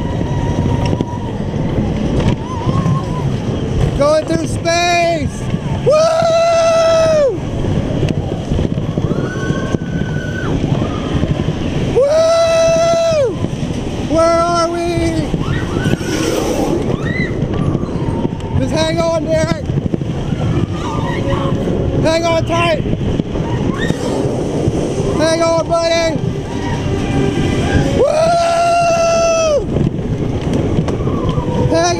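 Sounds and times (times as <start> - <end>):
rider whooping: 0.0 - 3.6, 5.2 - 7.6, 8.2 - 18.8, 20.1 - 21.8, 23.3 - 29.8, 30.5 - 31.9
roller coaster rumbling on track: 0.0 - 31.9.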